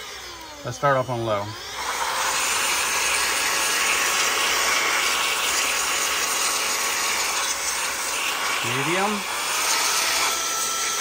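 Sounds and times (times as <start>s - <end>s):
electric air duster blowing: 0.0s - 11.0s.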